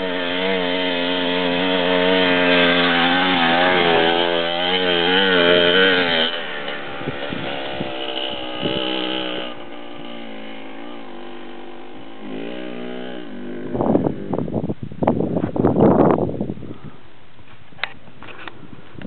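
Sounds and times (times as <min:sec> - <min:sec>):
dirt bike engine passing: 0:00.0 - 0:14.7.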